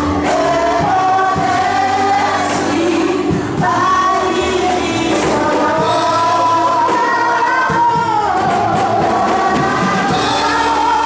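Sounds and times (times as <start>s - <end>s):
drums keeping a steady beat: 0.0s - 11.0s
keyboard: 0.0s - 11.0s
several voices singing gospel: 0.0s - 11.0s.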